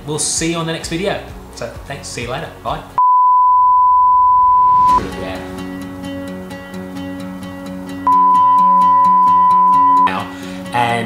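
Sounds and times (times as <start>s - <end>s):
high-pitched test-tone beep: 3.0s - 5.0s, 8.1s - 10.1s.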